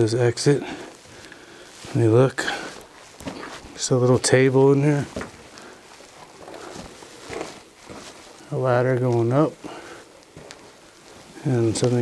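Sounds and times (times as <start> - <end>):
footsteps on dirt and rock: 0.0 - 12.0.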